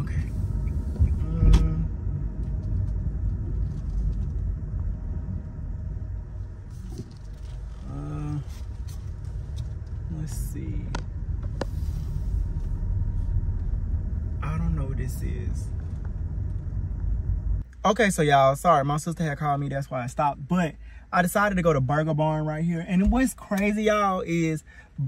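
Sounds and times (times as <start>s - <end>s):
car driving rumble: 0.0s - 25.0s
person speaking: 7.7s - 9.0s, 10.0s - 11.1s.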